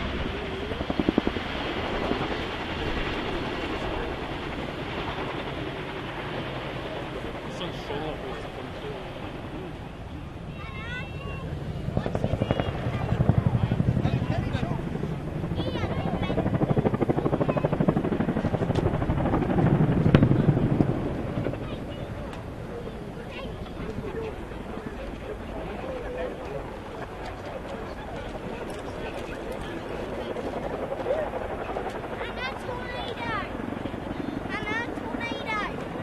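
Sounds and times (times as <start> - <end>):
helicopter rotors beating: 0.0 - 36.0
people's voices: 0.0 - 36.0.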